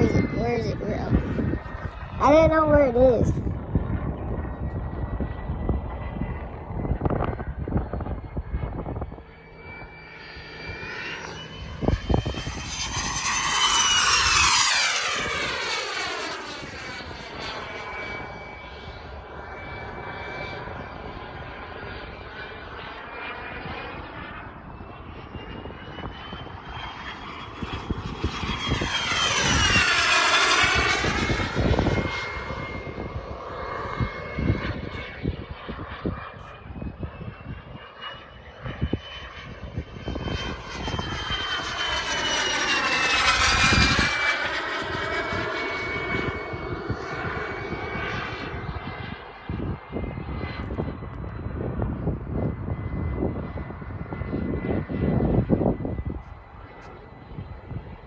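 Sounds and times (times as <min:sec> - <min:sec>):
model jet turbine whine: 0:00.0 - 0:58.0.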